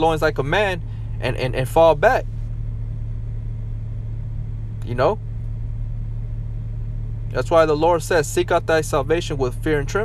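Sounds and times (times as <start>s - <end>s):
man speaking: 0.0s - 2.2s, 4.8s - 5.2s, 7.4s - 10.0s
low rumble: 0.0s - 10.0s.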